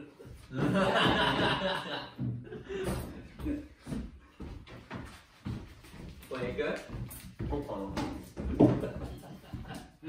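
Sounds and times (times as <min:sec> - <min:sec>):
men laughing: 0:00.0 - 0:03.9, 0:08.5 - 0:10.0.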